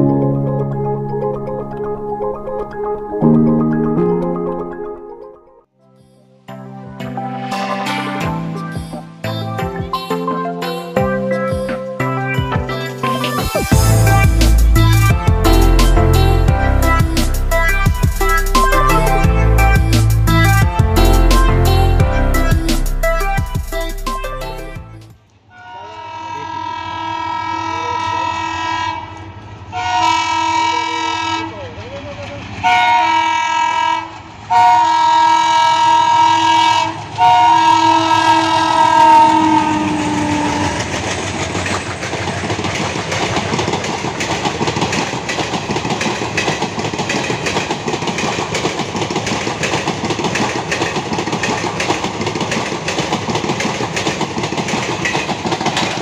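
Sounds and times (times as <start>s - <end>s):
locomotive horn blasts: 25.5s - 31.5s, 32.6s - 40.9s
train coaches rumbling: 27.5s - 56.0s
wheels clacking over rail joints: 39.7s - 56.0s.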